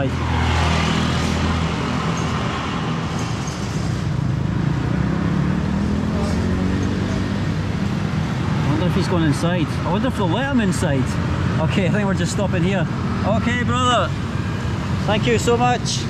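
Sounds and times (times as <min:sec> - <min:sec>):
motorbike engines: 0:00.0 - 0:16.0
road noise: 0:00.0 - 0:16.0.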